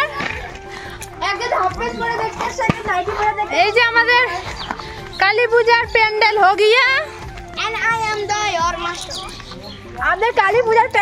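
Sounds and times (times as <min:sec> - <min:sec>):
voices speaking: 0:00.0 - 0:11.0.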